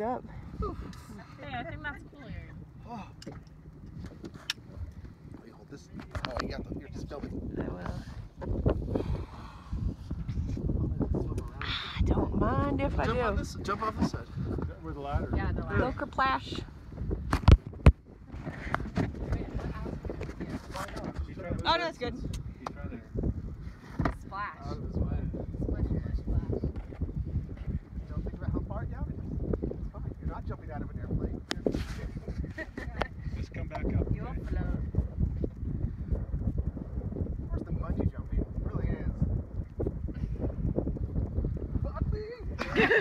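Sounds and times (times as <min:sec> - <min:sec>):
low wind rumble on microphone: 0:00.0 - 0:43.0.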